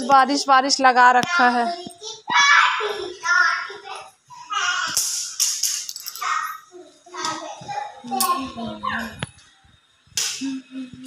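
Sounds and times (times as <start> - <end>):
young child's voice: 6.1 - 9.2.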